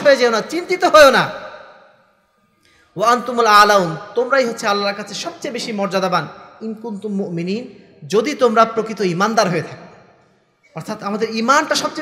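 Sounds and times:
man preaching: 0.0 - 1.9, 2.9 - 10.0, 10.7 - 12.0.

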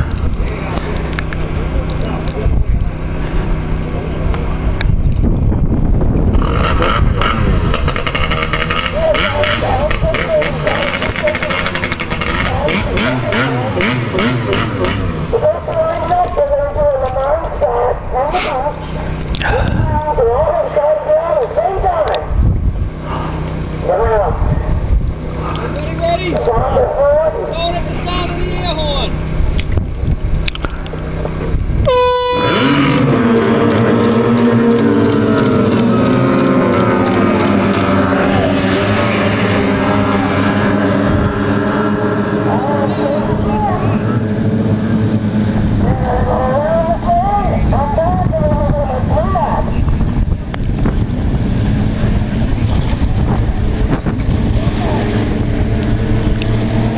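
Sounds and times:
racing outboard engines: 0.0 - 56.9
horn blast: 31.8 - 45.0.

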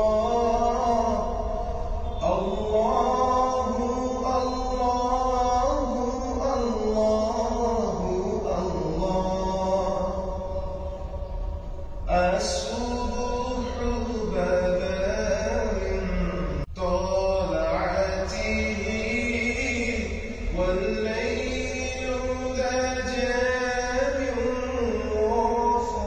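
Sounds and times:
sung vocal chant: 0.0 - 26.0.

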